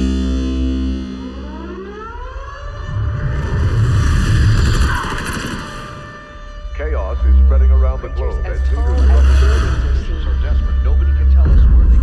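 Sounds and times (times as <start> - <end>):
siren-like wail rising in pitch: 0.5 - 11.5.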